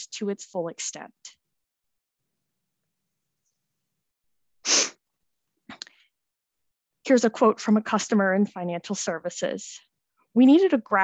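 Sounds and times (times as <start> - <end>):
sniff or stifled sneeze: 4.6 - 5.0.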